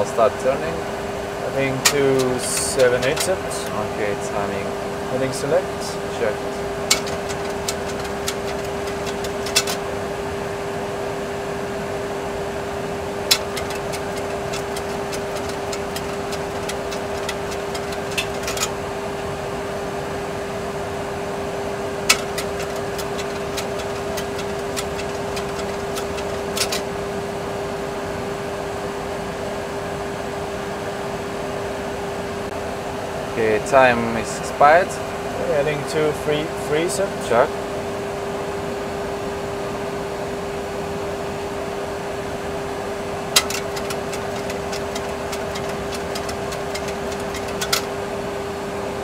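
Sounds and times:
constant cockpit hum: 0:00.0 - 0:49.0.

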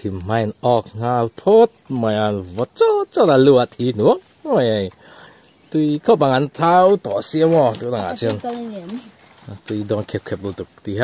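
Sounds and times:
man speaking: 0:00.0 - 0:05.0, 0:05.7 - 0:08.4, 0:09.4 - 0:11.0.

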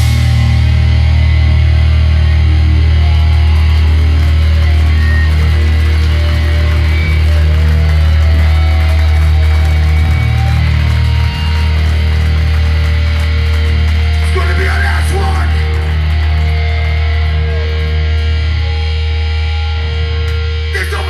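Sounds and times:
hardcore band playing live: 0:00.0 - 0:21.0.

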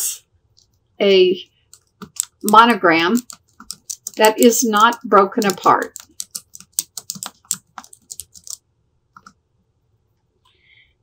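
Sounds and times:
typing on computer keyboard: 0:01.7 - 0:08.6.

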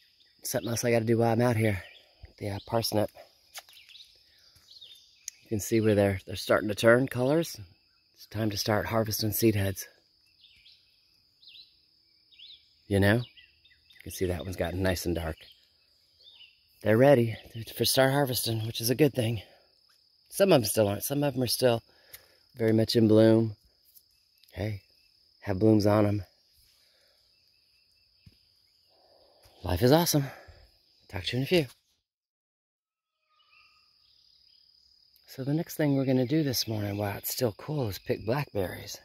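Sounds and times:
cricket trill: 0:00.0 - 0:31.7, 0:33.1 - 0:39.0
faint bird chirps: 0:00.0 - 0:32.0, 0:32.9 - 0:39.0.

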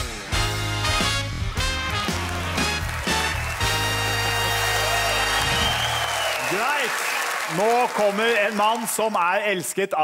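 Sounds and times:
tv theme jingle chords: 0:00.0 - 0:05.8
studio audience applause: 0:00.8 - 0:09.8.

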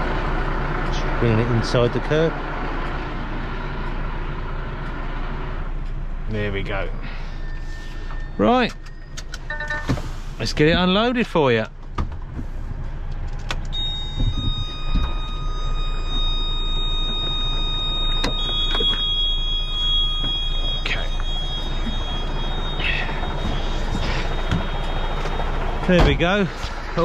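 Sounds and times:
diesel truck engine idling: 0:00.0 - 0:27.0
long high steady tones: 0:13.7 - 0:27.0.

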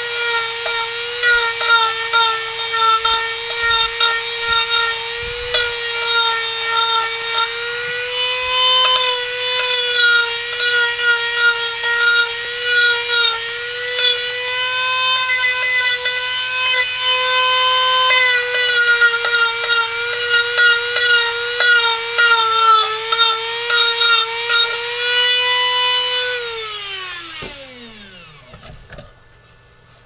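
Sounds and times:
rotary tool sanding wood: 0:00.0 - 0:28.7.

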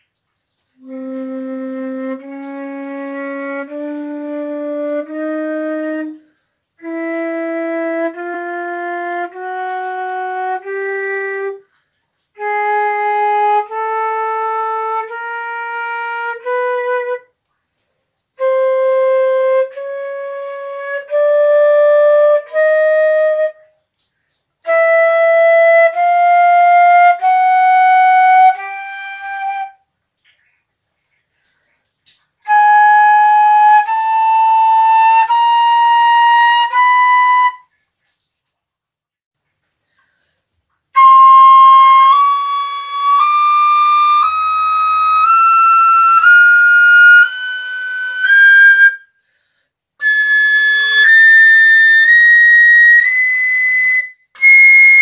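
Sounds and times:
flute playing a scale: 0:00.8 - 0:11.6, 0:12.4 - 0:17.3, 0:18.4 - 0:23.7, 0:24.6 - 0:29.8, 0:32.4 - 0:37.7, 0:41.0 - 0:49.2, 0:50.0 - 0:55.0.

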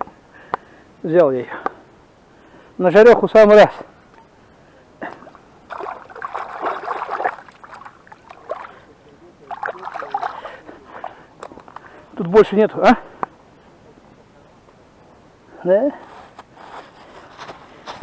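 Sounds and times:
hands splashing in shallow water: 0:05.1 - 0:08.9, 0:09.5 - 0:10.6.

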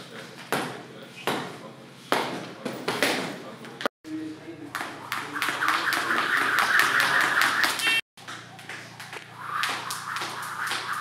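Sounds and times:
skipping rope tapping rubber floor: 0:04.7 - 0:11.0.

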